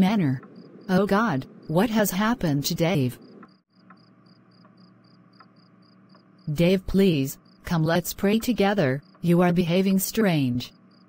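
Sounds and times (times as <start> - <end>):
woman's voice: 0.0 - 3.2, 6.5 - 10.7
crickets chirping: 0.2 - 11.0.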